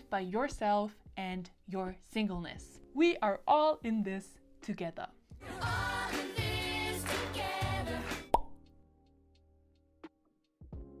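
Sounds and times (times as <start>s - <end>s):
pop song with singing: 5.3s - 8.5s.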